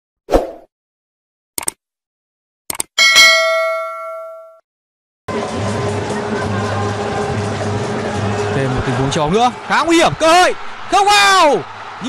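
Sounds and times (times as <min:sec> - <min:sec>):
quick double clicks: 0:01.6 - 0:01.8, 0:02.7 - 0:02.9
bell ding: 0:03.0 - 0:04.6.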